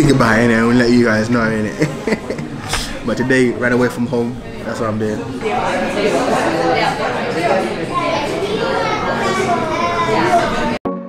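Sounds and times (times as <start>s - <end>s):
babble of many voices: 0.0s - 10.8s.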